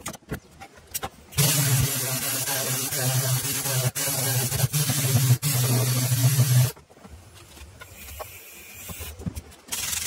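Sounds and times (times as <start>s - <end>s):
pneumatic sander hissing: 1.4s - 6.8s, 8.0s - 10.0s.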